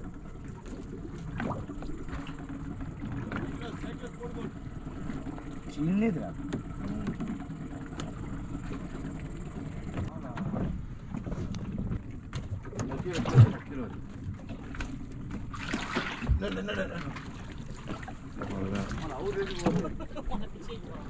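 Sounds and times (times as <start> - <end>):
fishing boat engine rumble: 0.0 - 21.0.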